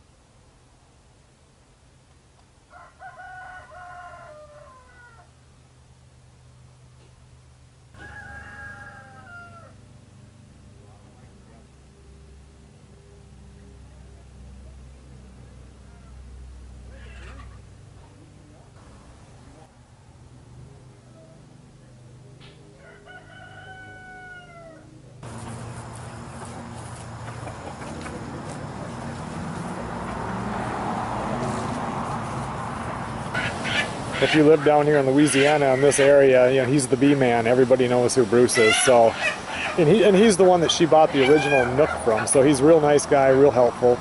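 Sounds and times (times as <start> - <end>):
steady outdoor hiss: 0.0 - 44.0
bird crowing call: 2.7 - 5.4, 8.0 - 9.8, 15.8 - 16.3, 22.7 - 25.0, 33.3 - 36.3, 38.5 - 40.2, 40.8 - 42.4.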